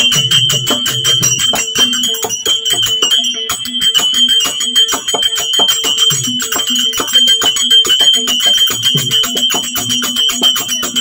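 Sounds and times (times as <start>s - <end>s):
drum beats: 0.0s - 11.0s
hand cymbals striking: 0.0s - 11.0s.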